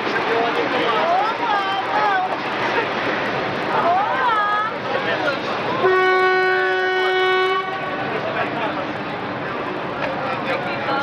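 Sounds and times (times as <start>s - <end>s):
train running noise: 0.0s - 11.0s
train horn: 5.8s - 8.0s.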